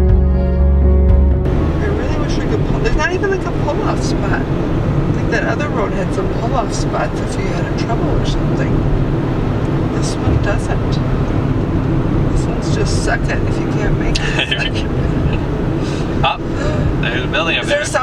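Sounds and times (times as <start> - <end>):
car engine and tyre rumble: 1.4 - 18.0.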